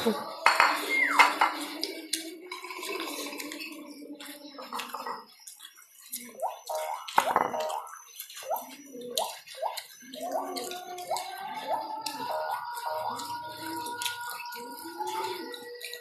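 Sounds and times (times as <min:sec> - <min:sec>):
wet eating smacks: 0:05.5 - 0:16.0.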